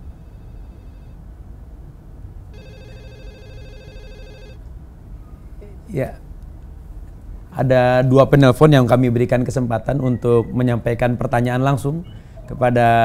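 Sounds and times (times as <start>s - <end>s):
telephone ringing: 2.5s - 4.6s.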